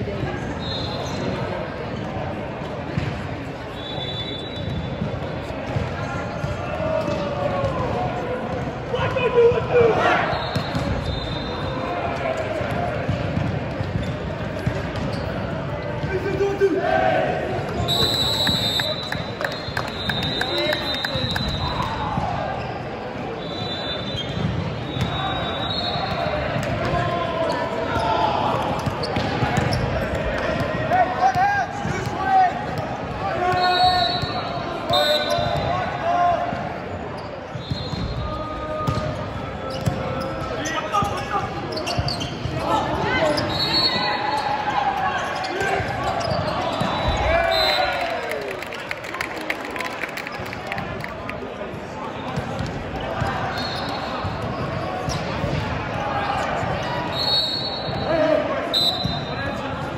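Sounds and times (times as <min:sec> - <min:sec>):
players shouting: 0:06.4 - 0:13.2, 0:15.9 - 0:22.7, 0:24.9 - 0:36.9, 0:38.1 - 0:48.7.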